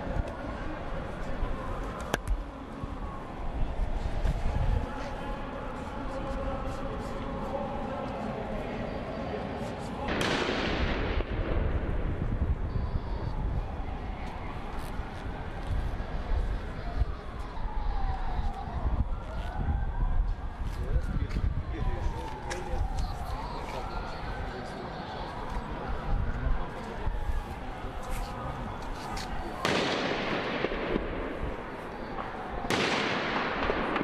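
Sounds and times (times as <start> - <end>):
emergency siren wailing: 0.0 - 10.2, 11.7 - 34.0
street noise: 0.0 - 34.0
sharp cracks: 10.1 - 11.9, 29.6 - 34.0.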